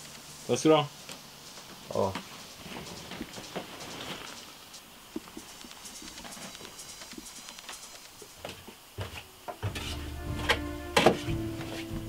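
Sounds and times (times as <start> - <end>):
sharp ticks: 2.4 - 8.4.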